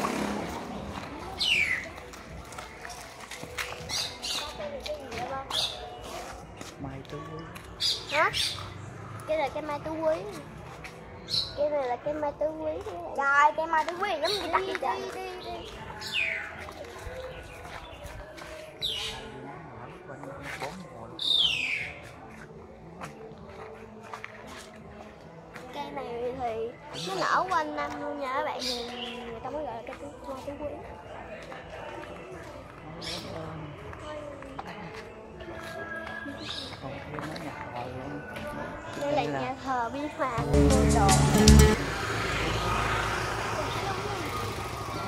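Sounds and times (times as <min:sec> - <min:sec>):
motor scooter passing: 0:00.0 - 0:02.0, 0:40.4 - 0:45.0
street noise: 0:00.0 - 0:45.0.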